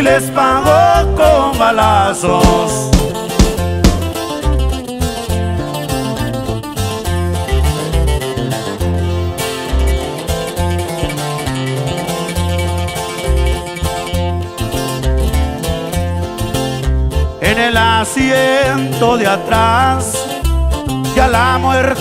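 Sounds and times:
acoustic guitars strummed and picked: 0.0s - 22.0s
electric bass line: 0.0s - 22.0s.

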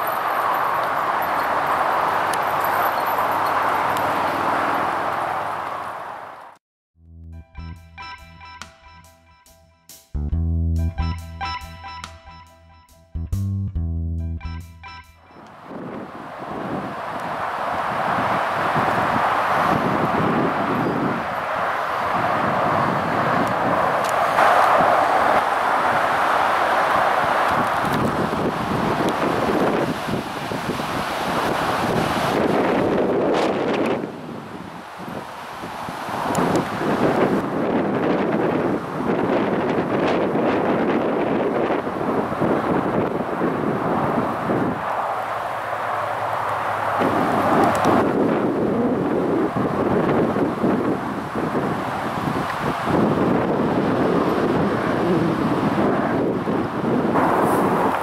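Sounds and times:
gusty wind on microphone: 15.4s - 58.0s.

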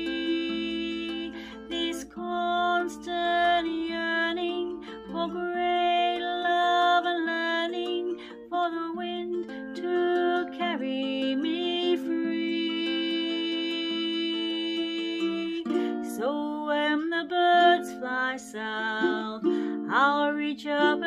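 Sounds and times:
ukulele chords: 0.0s - 21.0s
woman singing folk song: 0.0s - 21.0s.

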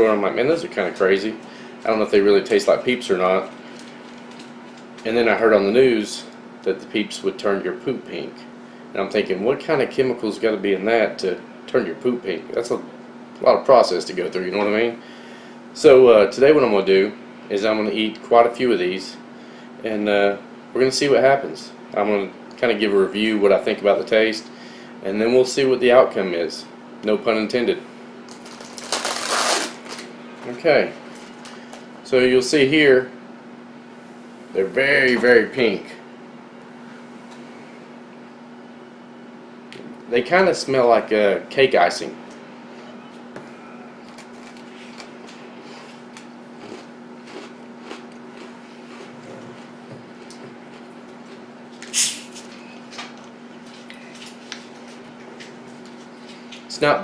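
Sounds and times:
low room hum: 0.0s - 57.0s
plastic package crinkling: 3.3s - 5.1s, 28.3s - 30.1s, 44.1s - 45.3s
quiet chewing: 44.1s - 51.9s.

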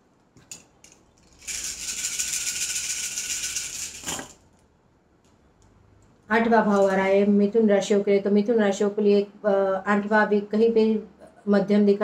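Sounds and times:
shells rattling in hands: 0.5s - 4.4s.

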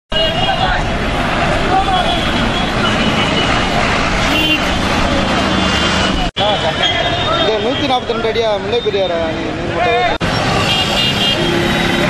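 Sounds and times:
traffic: 0.1s - 12.0s.

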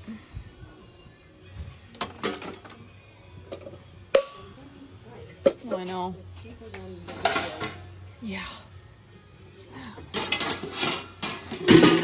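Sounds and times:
metal trays and plates clanking: 2.0s - 2.8s, 7.0s - 7.9s, 10.1s - 12.0s.

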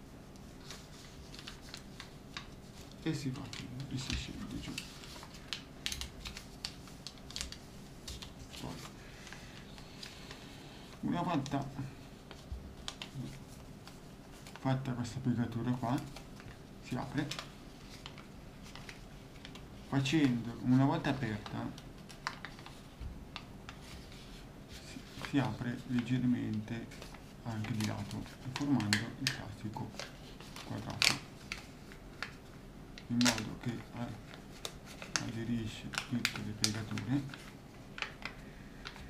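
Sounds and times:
paper crackling and rustling: 0.3s - 39.0s.

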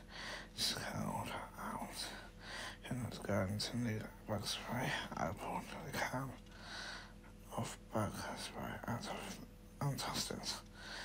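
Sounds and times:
man speaking softly: 0.6s - 6.5s, 7.4s - 10.7s.

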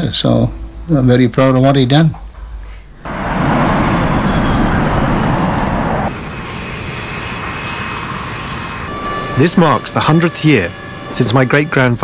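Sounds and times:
faint steady whines: 0.2s - 12.0s
jet engines rushing: 3.0s - 12.0s.

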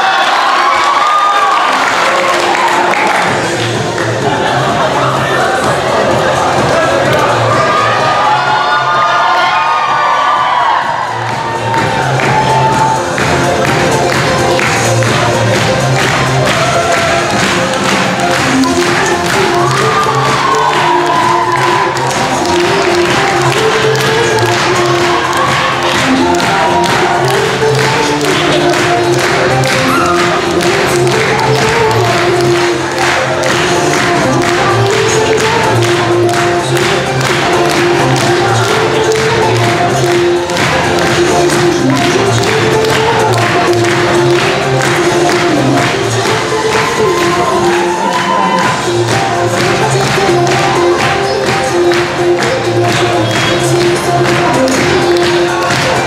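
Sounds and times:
audience cheering and shouting: 0.0s - 35.9s, 36.6s - 51.8s
synthesized voice pop song: 0.0s - 56.0s.

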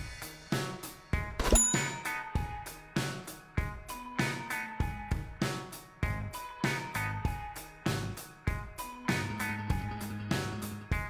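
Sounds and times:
music with steady drum beat: 0.0s - 11.0s
notification bell ding: 1.4s - 2.3s.

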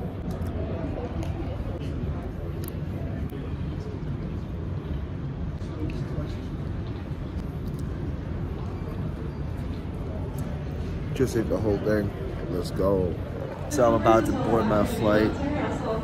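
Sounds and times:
faint indistinct voices: 0.0s - 16.0s.

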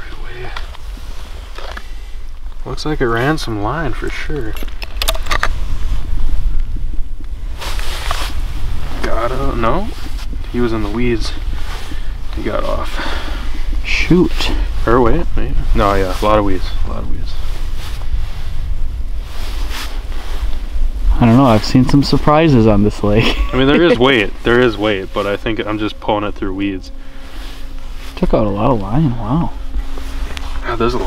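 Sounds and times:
faint rustle: 0.0s - 31.0s
steady low rumble: 0.0s - 31.0s
wind buffeting microphone: 0.0s - 31.0s.

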